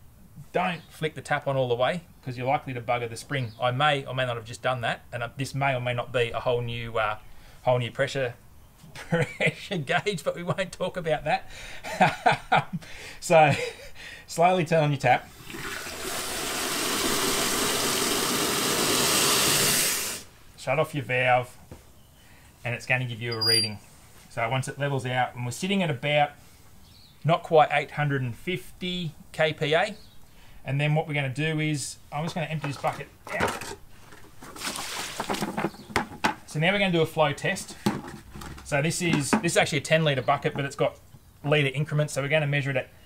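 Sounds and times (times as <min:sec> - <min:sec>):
water splashing into plastic bucket: 0:15.4 - 0:19.9, 0:34.3 - 0:36.4
water splashing onto grass: 0:34.5 - 0:35.5.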